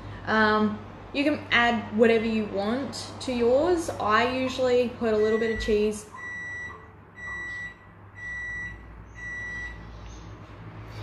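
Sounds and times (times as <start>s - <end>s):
electronic beeper beeps: 5.4s - 9.8s.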